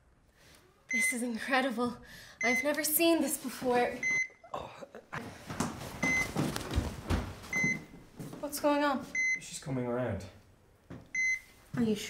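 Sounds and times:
heart monitor beeping: 2.4 - 2.7, 4.0 - 4.4, 6.0 - 6.6, 7.5 - 8.0, 9.1 - 9.4, 11.1 - 11.5.

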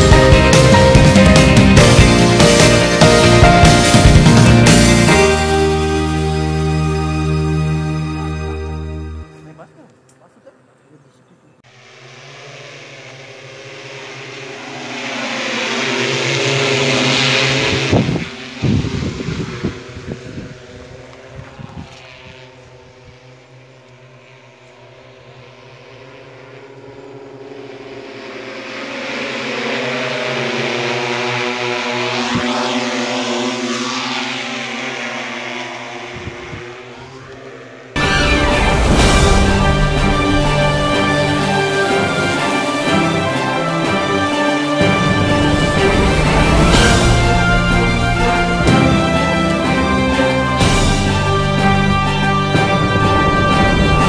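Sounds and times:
drone rotor whine: 0.0 - 10.8, 11.5 - 54.0
buffeting noise: 0.0 - 54.0.

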